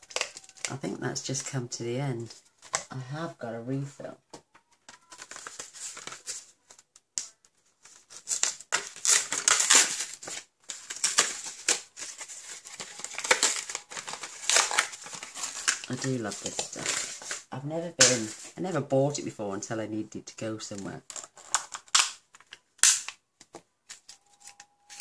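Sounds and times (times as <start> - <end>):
plastic packaging crinkling: 0.0 - 0.8, 4.8 - 18.6, 20.9 - 25.0.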